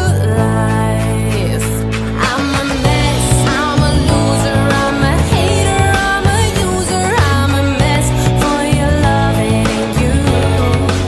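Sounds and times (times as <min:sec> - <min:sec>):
pop music with strong bass: 0:00.0 - 0:11.0.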